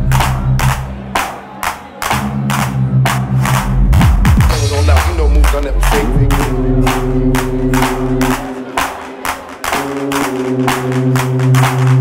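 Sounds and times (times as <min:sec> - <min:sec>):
deep bass line: 0:00.0 - 0:01.2, 0:02.1 - 0:08.6.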